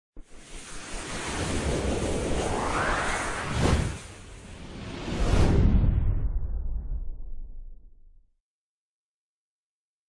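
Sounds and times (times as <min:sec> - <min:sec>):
whoosh rushing noise: 0:00.2 - 0:07.3.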